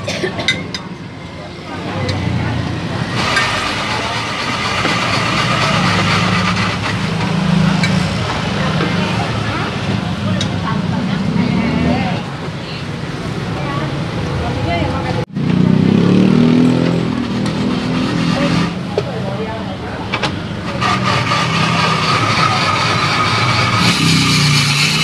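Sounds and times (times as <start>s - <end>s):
road traffic: 0.0s - 25.0s.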